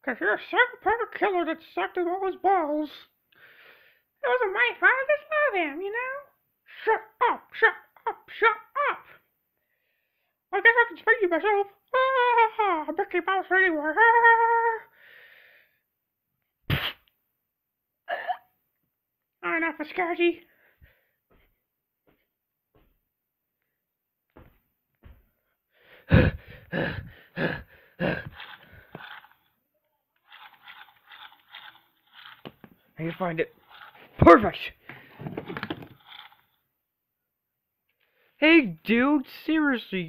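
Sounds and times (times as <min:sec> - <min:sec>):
faint breath: 0:03.3 - 0:04.1, 0:09.2 - 0:10.4, 0:14.9 - 0:15.8, 0:20.5 - 0:21.5, 0:25.4 - 0:29.2
camera handling rustling: 0:28.3 - 0:29.4, 0:30.2 - 0:32.8, 0:33.6 - 0:34.2, 0:34.8 - 0:36.5.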